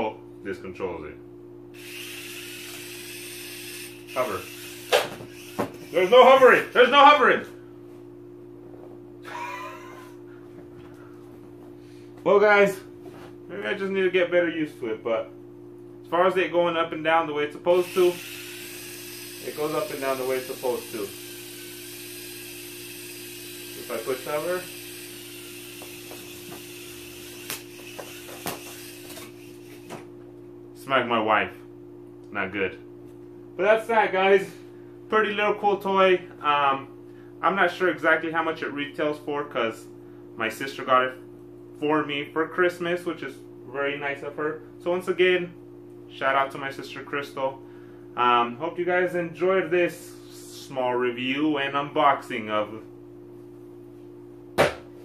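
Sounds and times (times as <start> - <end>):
low electrical hum: 0.0 - 55.0
toy drone humming: 1.8 - 6.8, 17.7 - 30.0
sharp knock on cardboard box: 54.6 - 54.9.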